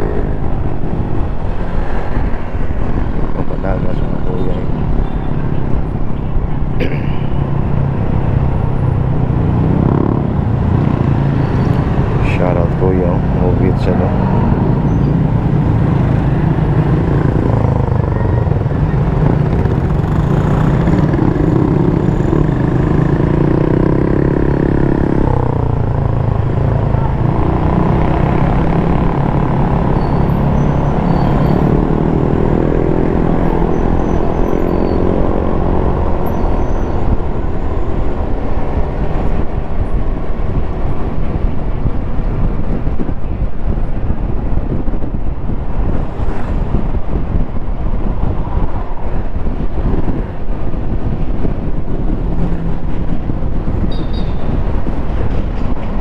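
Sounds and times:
road and wind noise: 0.0s - 56.0s
motorcycle engine accelerating: 13.2s - 37.3s.

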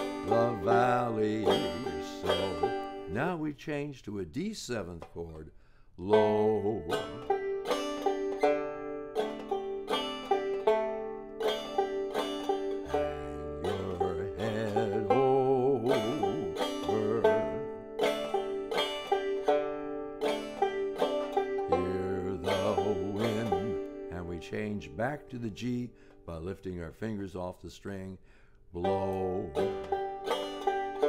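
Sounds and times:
banjo strumming: 0.0s - 28.1s, 28.8s - 31.0s.

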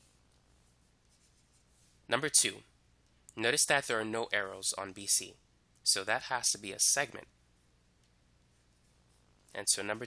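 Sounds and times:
stylus scratching on tablet: 0.0s - 2.1s, 8.5s - 10.0s.

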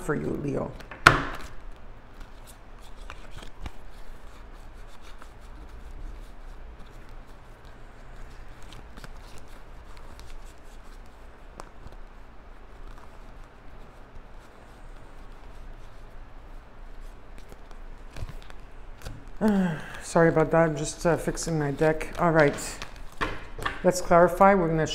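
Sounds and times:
low steady hum: 0.0s - 24.9s
cards rustling and clicking: 0.1s - 24.9s.

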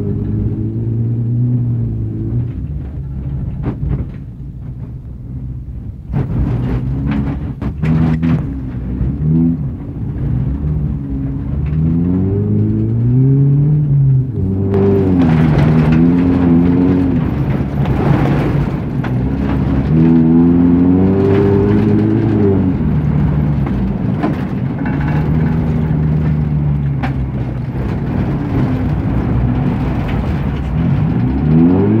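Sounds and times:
car engine revving: 0.0s - 32.0s.

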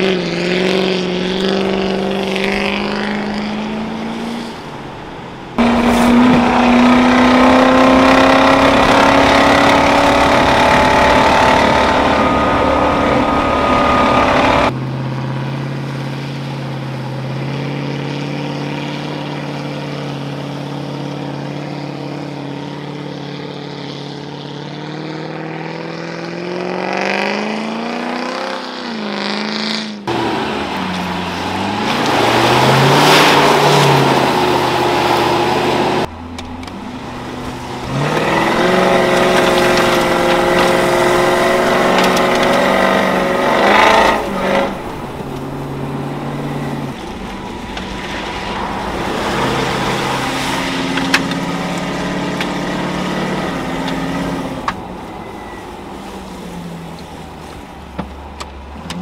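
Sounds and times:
car engine revving under load: 0.0s - 59.0s.

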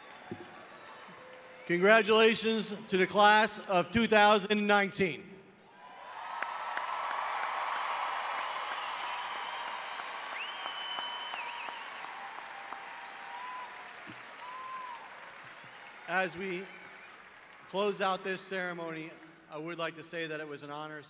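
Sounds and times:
crowd applauding: 0.0s - 2.0s, 5.7s - 19.3s.

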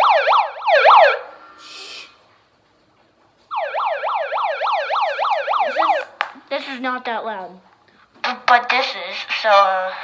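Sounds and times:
megaphone siren warbling: 0.0s - 1.3s, 3.5s - 6.1s.

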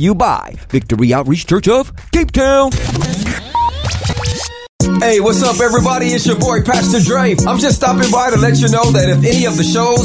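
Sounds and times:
scratch sound effects: 0.7s - 4.7s
radio jingle music: 0.9s - 10.0s.

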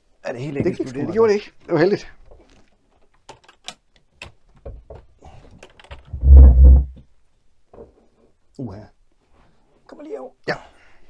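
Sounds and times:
loud low thump: 6.1s - 7.0s.

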